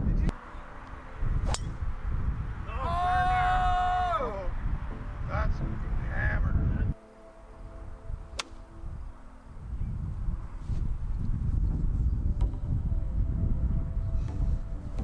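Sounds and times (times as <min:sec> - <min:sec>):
wind buffeting microphone: 0:00.0 - 0:00.4, 0:01.0 - 0:07.0, 0:07.7 - 0:15.0.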